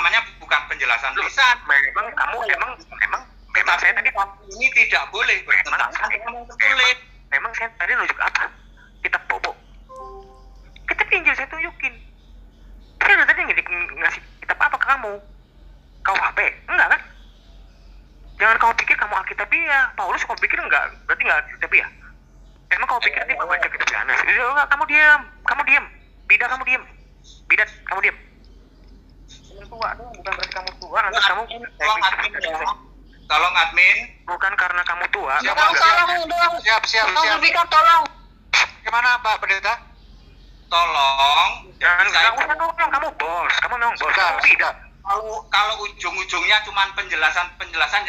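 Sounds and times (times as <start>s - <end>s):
faint low hum: 0.0s - 48.0s
voices talking on a video call: 0.0s - 48.0s
short steady tone: 9.9s - 10.8s.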